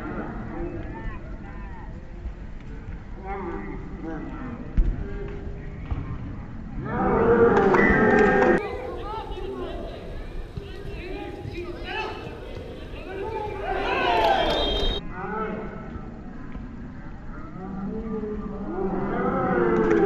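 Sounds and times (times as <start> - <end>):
footballers shouting: 7.0 - 15.0.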